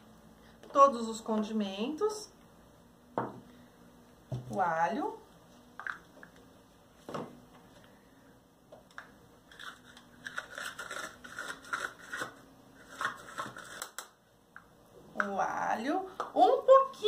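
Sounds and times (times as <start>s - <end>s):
garlic skin crackling: 9.5s - 14.0s.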